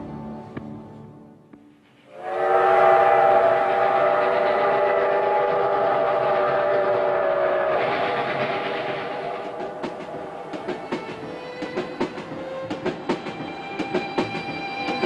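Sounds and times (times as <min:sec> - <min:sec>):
train wheels clicking over rail joints: 0:01.7 - 0:15.0
steam locomotive whistle: 0:02.1 - 0:11.6.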